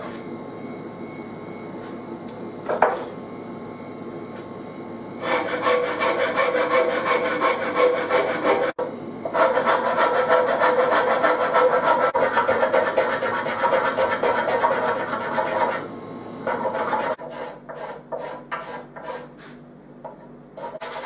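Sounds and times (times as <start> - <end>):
rasp filing wood: 5.2 - 15.9, 16.5 - 19.6, 20.6 - 21.0.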